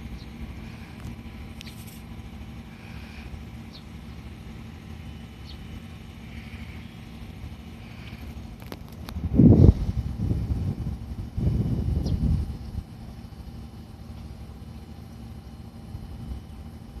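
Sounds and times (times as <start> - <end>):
electric train rumbling: 0.0 - 17.0.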